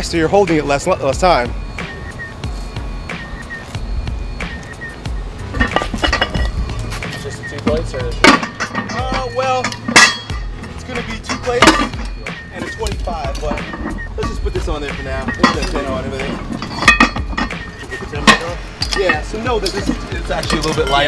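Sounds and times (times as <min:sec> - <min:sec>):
iron weight plates clanking: 0:04.6 - 0:21.0.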